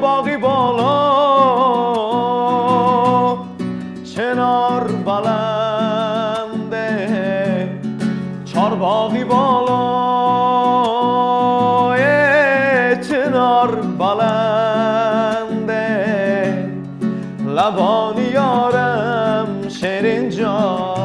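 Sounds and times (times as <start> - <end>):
classical guitar strummed and plucked: 0.0 - 21.0
man singing with vibrato: 0.0 - 21.0
man breathing in: 17.0 - 17.4.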